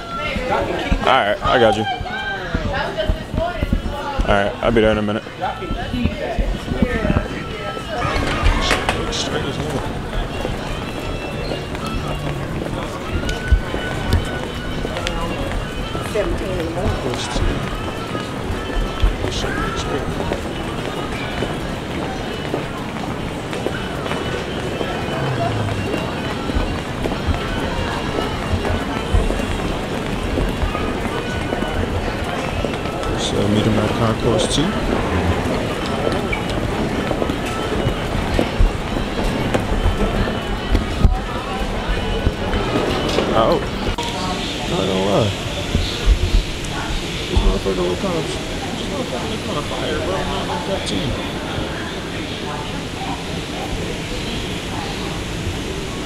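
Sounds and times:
hubbub of voices: 0:00.0 - 0:56.0
footsteps thumping: 0:00.3 - 0:05.0
terminal noise: 0:24.2 - 0:28.4.

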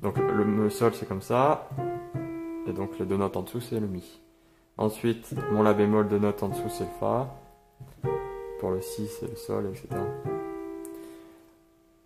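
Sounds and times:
piano chord ringing: 0:00.0 - 0:12.0.

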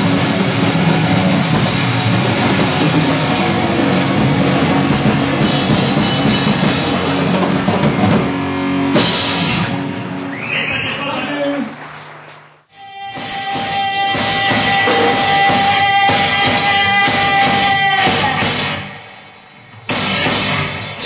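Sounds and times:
rock band playing: 0:00.0 - 0:12.4, 0:13.2 - 0:21.0.

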